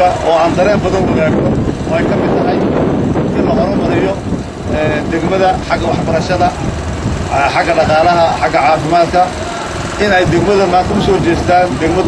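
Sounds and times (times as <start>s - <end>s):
man speaking into microphone: 0.0s - 12.0s
steady low rumble: 0.0s - 12.0s.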